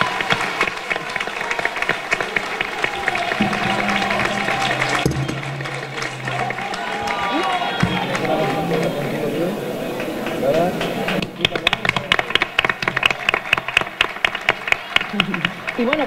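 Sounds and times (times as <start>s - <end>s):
audience clapping: 0.0s - 16.0s
crowd talking and calling out: 0.0s - 16.0s.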